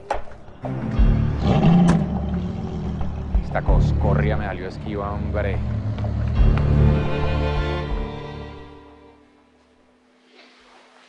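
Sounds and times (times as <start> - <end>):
background music: 0.0 - 10.1
car engine revving: 1.3 - 7.4.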